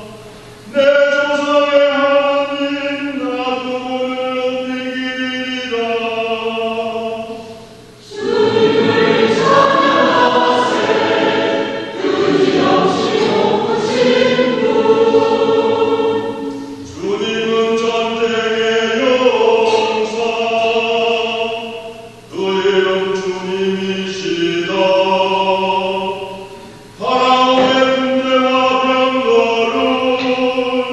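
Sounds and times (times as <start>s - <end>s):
church choir singing: 0.0s - 30.9s
choir breaths: 7.4s - 17.0s.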